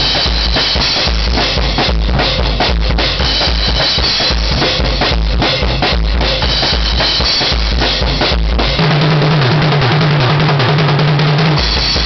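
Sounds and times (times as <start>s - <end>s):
drum roll on toms: 0.0s - 12.0s.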